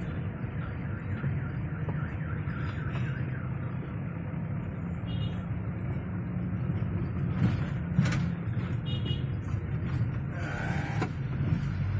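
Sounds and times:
car engine and road rumble: 0:00.0 - 0:11.9.

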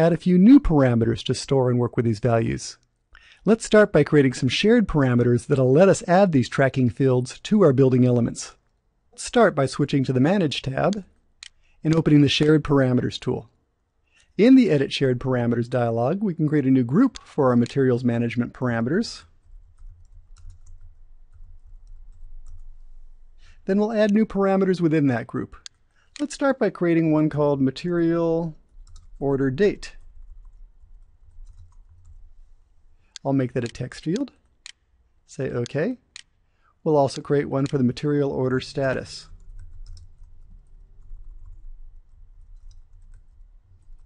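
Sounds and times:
low steady hum: 0:00.0 - 0:44.0
keyboard typing: 0:19.2 - 0:22.8, 0:28.6 - 0:29.2, 0:29.9 - 0:32.2, 0:39.2 - 0:41.7, 0:42.4 - 0:44.0.

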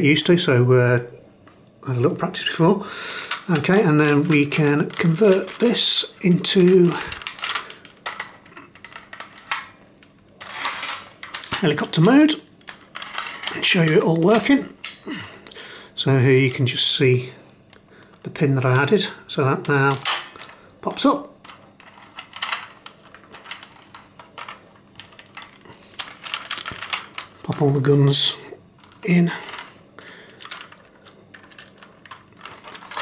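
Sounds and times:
plastic toy parts clicking: 0:10.4 - 0:11.6, 0:21.4 - 0:27.6, 0:30.3 - 0:33.0.

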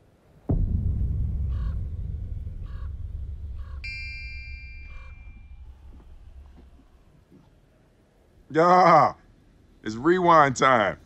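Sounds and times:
low rumble: 0:00.5 - 0:07.4
crows cawing: 0:01.5 - 0:01.8, 0:03.6 - 0:03.8
bright chime ringing: 0:03.8 - 0:05.5.

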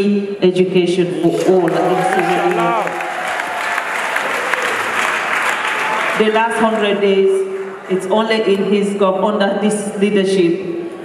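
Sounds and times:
audience applauding: 0:01.2 - 0:08.0.

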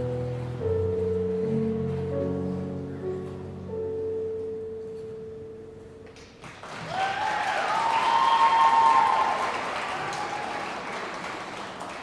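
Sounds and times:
audience applause and cheering: 0:06.4 - 0:12.0.

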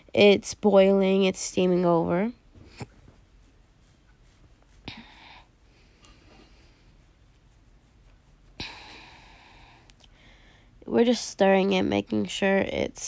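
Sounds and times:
spatula stirring a pot: 0:00.7 - 0:08.6.

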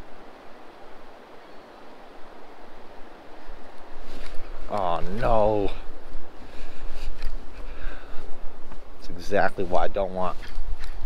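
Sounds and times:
wind: 0:00.0 - 0:11.0.

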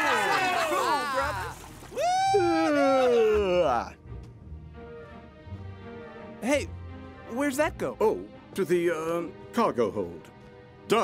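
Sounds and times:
cartoon voices whooping: 0:00.0 - 0:03.7.

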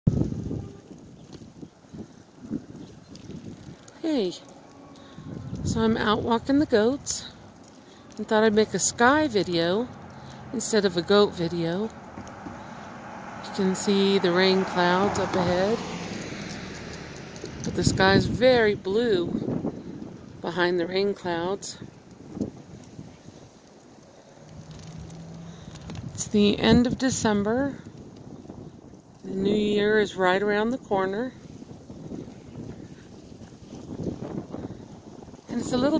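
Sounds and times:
wind buffeting microphone: 0:00.1 - 0:35.9.

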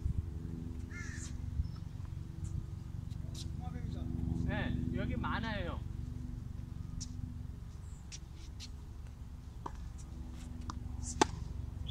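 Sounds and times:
steady low rumble: 0:00.0 - 0:11.9.

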